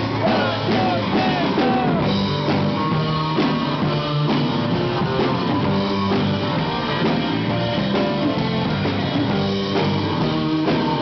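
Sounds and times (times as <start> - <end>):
man singing: 0.0 - 2.1
live rock band: 0.0 - 11.0.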